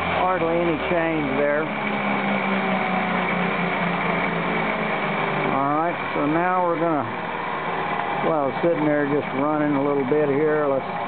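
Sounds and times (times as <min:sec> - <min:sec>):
electric motor spinning flywheel: 0:00.0 - 0:11.0.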